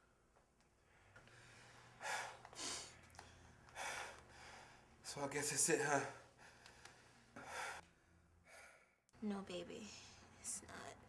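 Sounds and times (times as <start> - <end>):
person breathing: 0.8 - 5.0, 6.2 - 9.0.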